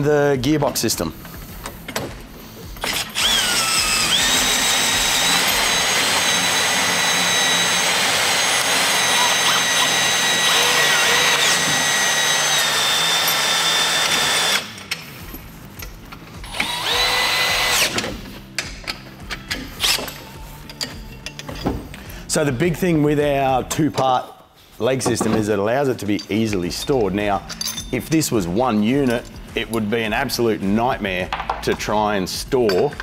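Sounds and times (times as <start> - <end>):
cordless drill whining: 2.8 - 14.8, 16.4 - 18.2.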